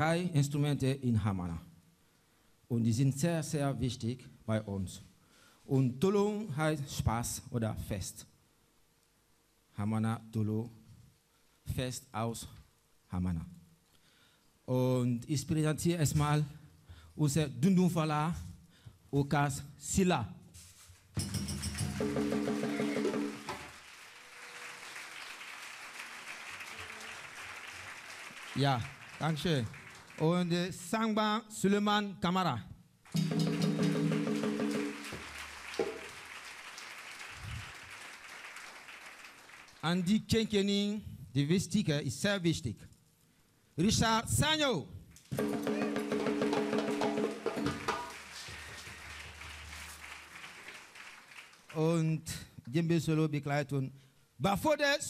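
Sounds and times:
pitched percussion roll: 21.2 - 23.8, 33.1 - 36.3, 45.3 - 49.8
audience applause: 22.0 - 30.5, 33.6 - 39.8, 45.4 - 51.8.

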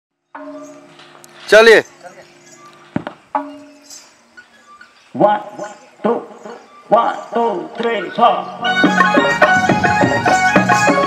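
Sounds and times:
barrel drum strikes: 2.9 - 3.7.

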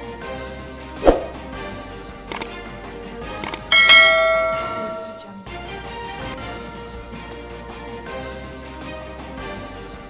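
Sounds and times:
quick double click: 3.4 - 3.7
notification bell ding: 3.4 - 5.3.

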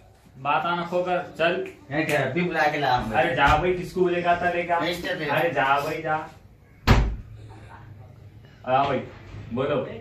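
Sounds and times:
door slamming shut: 6.8 - 7.3.

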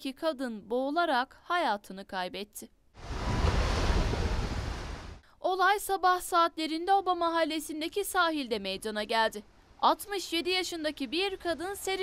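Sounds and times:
waves washing: 3.0 - 5.2
wind buffeting microphone: 3.0 - 5.2.

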